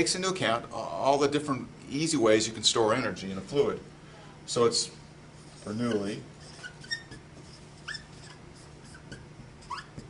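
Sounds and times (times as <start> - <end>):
marker squeaking on whiteboard: 5.4 - 10.0.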